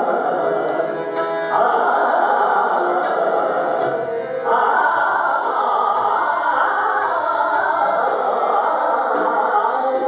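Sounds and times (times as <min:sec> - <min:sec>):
harmonium: 0:00.0 - 0:10.0
man singing classical vocals: 0:00.0 - 0:10.0.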